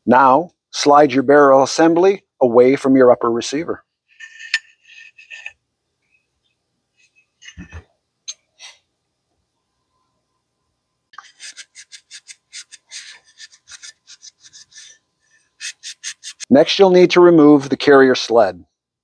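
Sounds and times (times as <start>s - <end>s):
cloth rubbing on metal: 11.2s - 16.5s.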